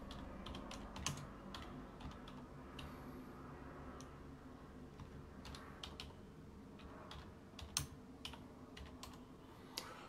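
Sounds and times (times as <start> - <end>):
computer keyboard typing: 0.0 - 2.9, 5.0 - 9.2
low room hum: 0.0 - 10.0.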